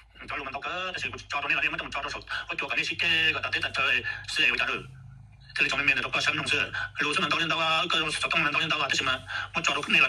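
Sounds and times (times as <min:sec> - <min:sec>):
person talking: 0:00.2 - 0:10.0.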